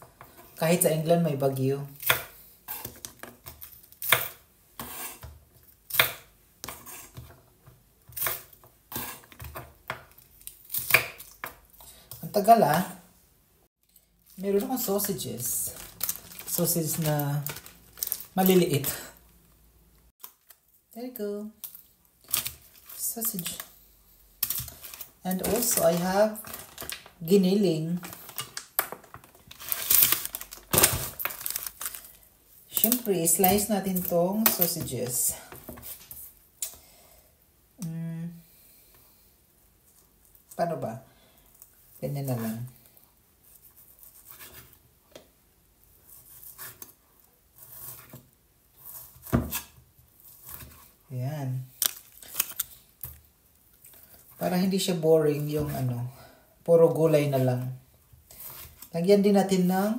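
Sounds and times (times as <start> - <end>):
plastic packaging crinkling: 14.2 - 19.4, 24.4 - 35.2, 51.7 - 54.0.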